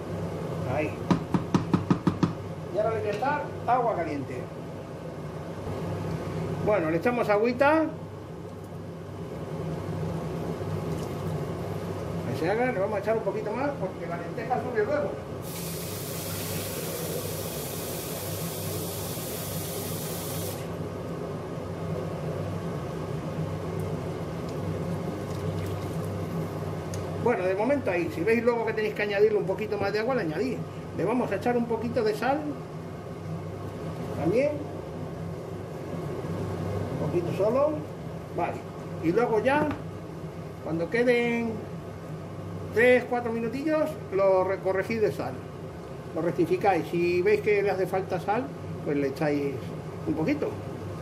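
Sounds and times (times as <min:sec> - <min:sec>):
steady low hum: 0:00.0 - 0:51.0
wooden spoon knocking metal pot: 0:01.1 - 0:02.4
hot water pouring into pot: 0:15.4 - 0:20.6.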